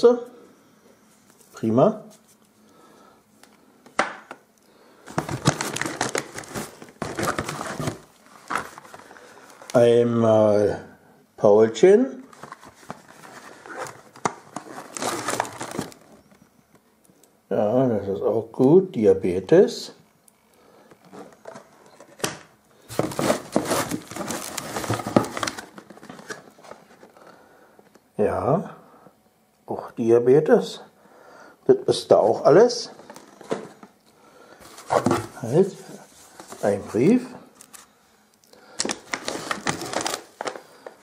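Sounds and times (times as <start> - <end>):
packaging rustling and crinkling: 5.0 - 9.8, 12.2 - 16.4, 21.0 - 27.2, 32.9 - 33.9, 34.6 - 37.9, 38.7 - 41.0.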